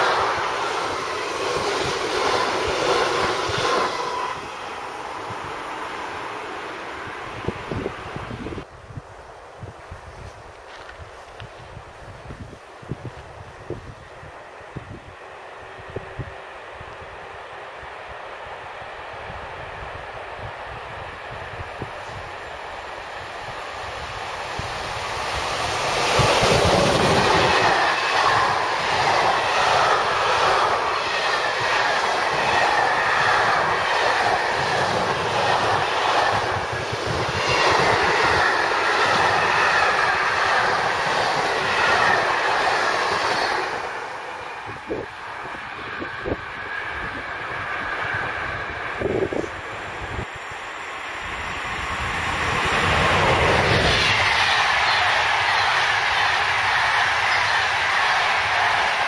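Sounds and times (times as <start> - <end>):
freight train passing: 0.0 - 59.0
train approaching: 0.0 - 59.0.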